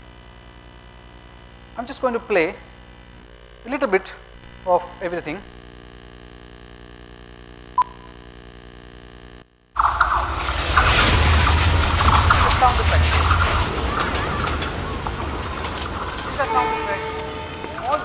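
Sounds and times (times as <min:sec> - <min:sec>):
electrical hum: 0:00.0 - 0:18.0
many voices: 0:12.1 - 0:18.0
traffic noise: 0:13.2 - 0:18.0.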